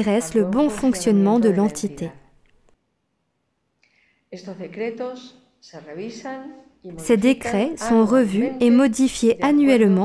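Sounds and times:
woman speaking: 0.0 - 2.4, 4.4 - 10.0
soft intake of breath: 3.8 - 4.3.

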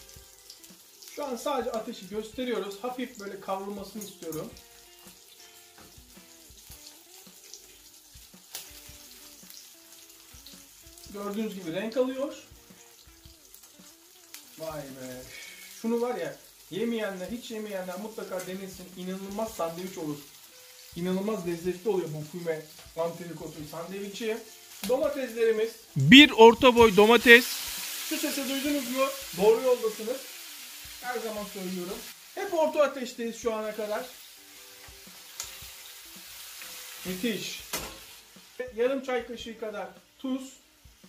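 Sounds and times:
meat sizzling in a wok: 0.0 - 26.0, 27.0 - 41.0
people talking: 26.0 - 27.5.

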